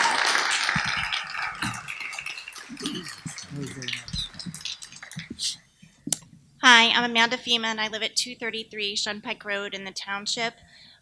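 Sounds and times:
audience applause: 0:00.0 - 0:05.4
faint murmuring: 0:02.7 - 0:04.7.

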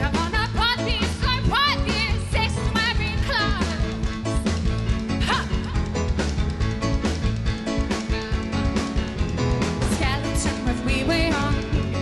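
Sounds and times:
live pop-rock band playing: 0:00.0 - 0:12.0.

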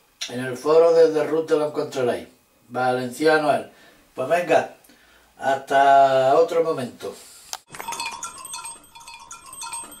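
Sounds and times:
small bells tinkling: 0:07.7 - 0:10.0.

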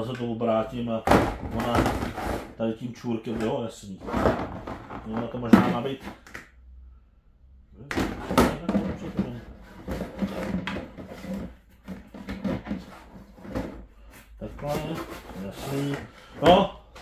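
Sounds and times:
hollow plastic knocks and clatters: 0:01.0 - 0:02.6, 0:03.2 - 0:06.5, 0:07.9 - 0:13.9.

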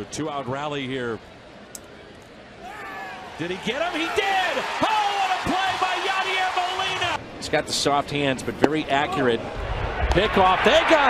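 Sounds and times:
crowd cheering: 0:02.6 - 0:07.2, 0:09.6 - 0:11.0.

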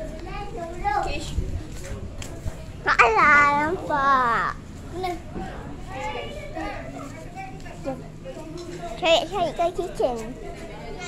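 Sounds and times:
children talking and calling out: 0:00.0 - 0:01.8, 0:02.5 - 0:11.0.

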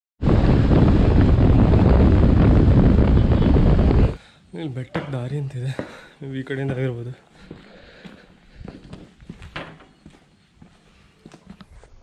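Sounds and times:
wind buffeting microphone: 0:00.2 - 0:04.2.

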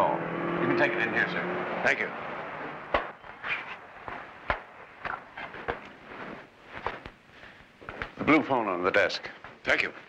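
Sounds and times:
footsteps: 0:02.9 - 0:08.5.

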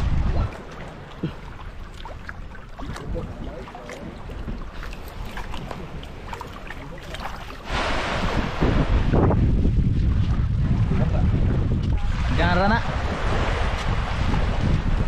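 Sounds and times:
shallow water sloshing and splashing: 0:00.0 - 0:15.0
small waves washing: 0:00.0 - 0:15.0
wind buffeting microphone: 0:00.0 - 0:15.0.

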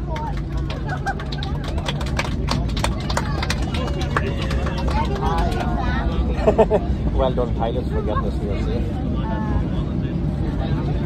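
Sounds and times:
passengers clapping: 0:00.0 - 0:06.4
aircraft hum: 0:00.0 - 0:11.0
people talking: 0:00.0 - 0:11.0.

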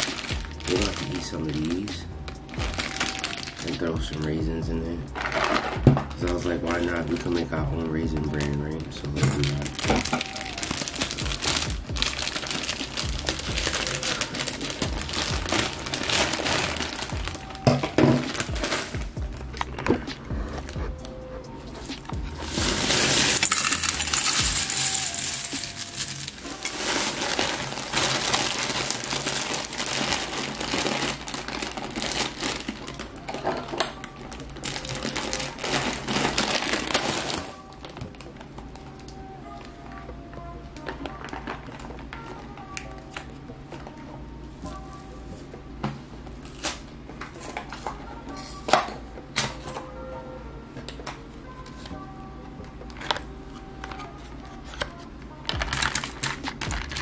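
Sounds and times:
plastic bag crinkling: 0:00.0 - 0:04.3, 0:05.2 - 0:20.0, 0:22.2 - 0:38.3, 0:55.5 - 0:57.0
background music: 0:00.0 - 0:57.0
flakes poured into metal bowl: 0:22.7 - 0:30.1.

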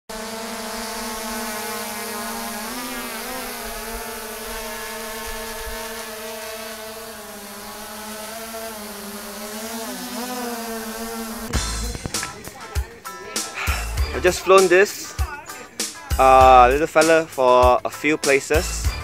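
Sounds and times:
drone propellers humming: 0:00.1 - 0:19.0.

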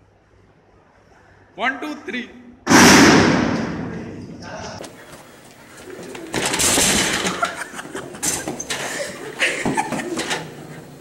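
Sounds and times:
loud crash: 0:02.7 - 0:04.4.

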